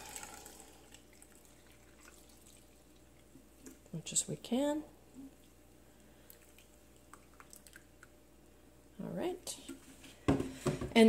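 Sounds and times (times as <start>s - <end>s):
liquid trickling into jar: 0.0s - 3.2s.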